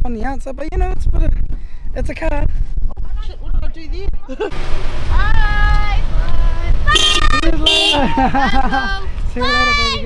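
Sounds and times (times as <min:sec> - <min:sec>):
wind rumble on microphone: 0:00.0 - 0:10.0
car horn toots: 0:06.9 - 0:08.1.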